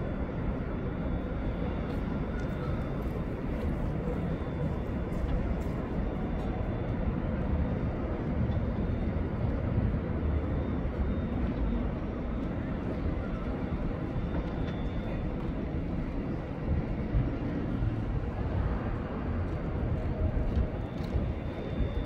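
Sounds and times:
low traffic rumble: 0.0s - 22.0s.

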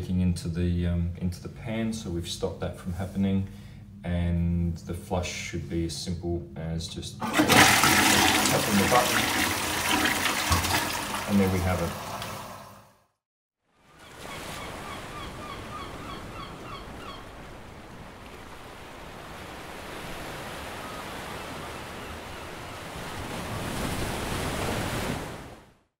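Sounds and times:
toilet flush draining: 7.2s - 12.9s
short bird calls: 14.0s - 17.3s.

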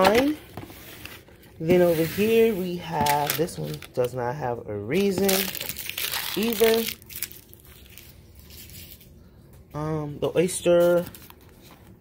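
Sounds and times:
packaging rustling: 0.0s - 4.2s, 5.0s - 9.2s.

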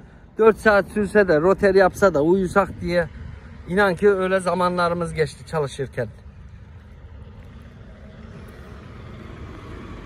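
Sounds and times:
heavy truck engine rumble: 0.0s - 10.0s.

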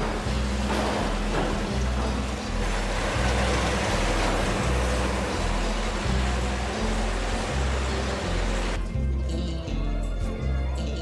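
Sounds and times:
band sawmill running: 0.0s - 8.8s
background music with bass line: 0.0s - 11.0s.

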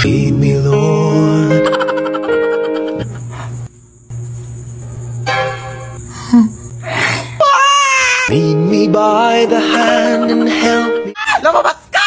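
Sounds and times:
crickets trilling: 0.0s - 10.9s.

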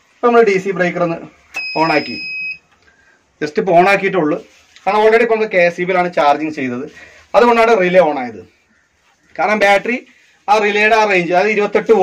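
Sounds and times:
man talking: 0.2s - 2.3s, 3.4s - 8.6s, 9.3s - 12.0s
high electronic beep: 1.5s - 2.6s.

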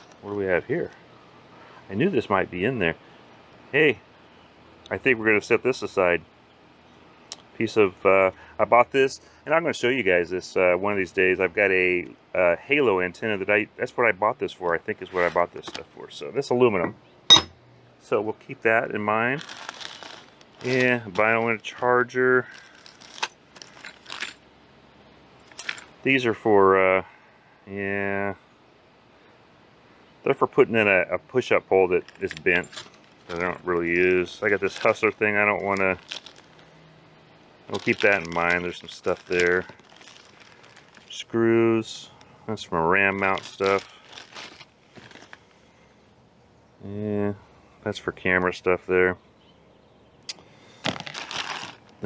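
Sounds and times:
metal parts clinking in plastic bag: 19.2s - 21.7s, 22.4s - 24.4s, 25.4s - 25.9s, 32.0s - 36.7s, 37.7s - 41.2s, 43.1s - 45.4s, 50.8s - 51.9s.

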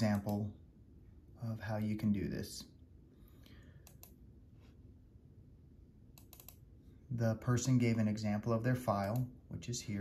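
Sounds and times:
faint computer clicks: 0.0s - 0.5s, 3.4s - 4.2s, 6.1s - 6.6s, 8.9s - 9.3s.

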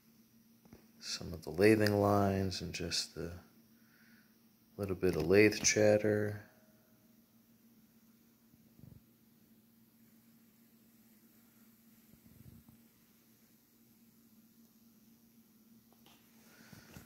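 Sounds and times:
low steady hum: 0.0s - 17.0s.

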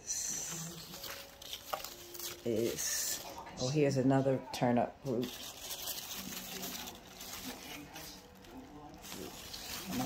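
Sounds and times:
leaves rustling: 0.4s - 3.4s, 5.1s - 10.0s.

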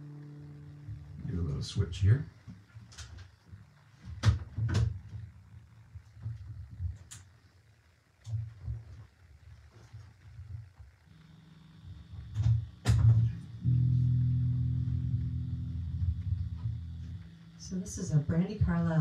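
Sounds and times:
bass guitar note ringing: 0.0s - 2.8s, 11.0s - 19.0s
faint low thuds: 11.9s - 19.0s
bass guitar handling clicks: 12.0s - 17.3s.

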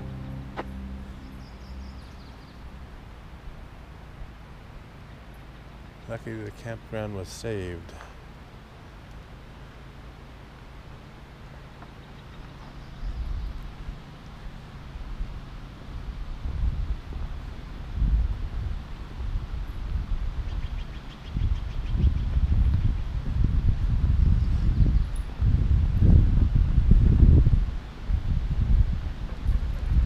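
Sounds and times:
wind buffeting microphone: 15.0s - 30.0s.

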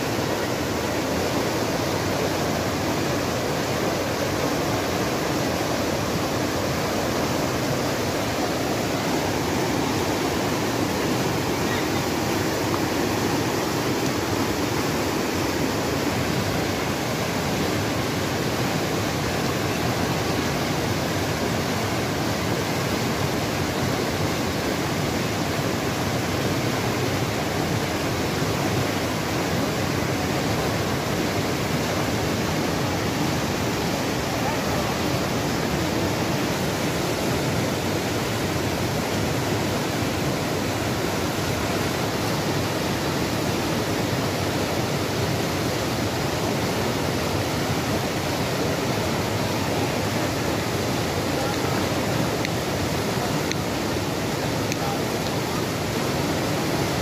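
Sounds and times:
river rushing over rocks: 0.0s - 57.0s.

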